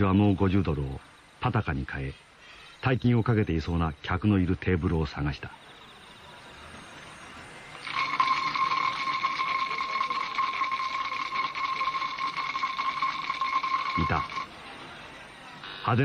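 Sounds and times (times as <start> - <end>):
electric buzzer ringing: 7.8 - 14.5.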